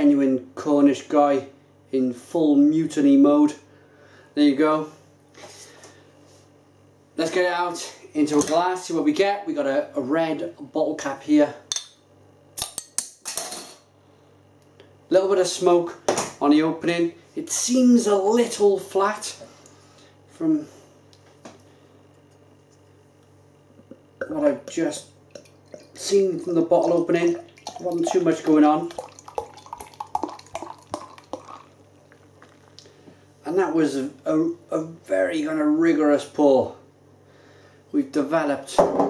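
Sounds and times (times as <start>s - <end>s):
beer glugging from bottle: 24.2s - 32.8s.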